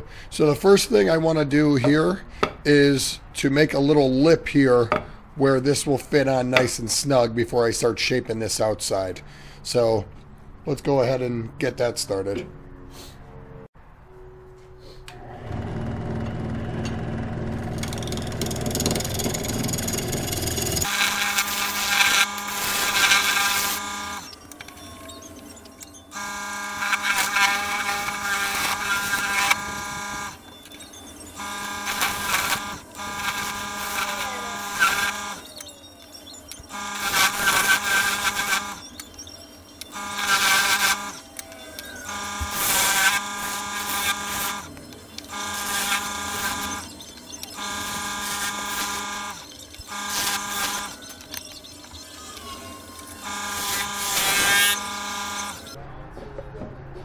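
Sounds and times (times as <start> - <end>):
motor hum: 15.0 - 55.8
lathe tool cutting wood: 15.4 - 55.8.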